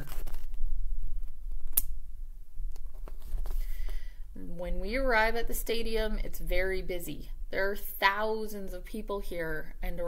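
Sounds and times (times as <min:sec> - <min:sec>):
book handling noise: 0:00.0 - 0:01.9, 0:02.8 - 0:04.0
low steady hum: 0:00.0 - 0:10.0
sharp click: 0:01.7 - 0:02.0.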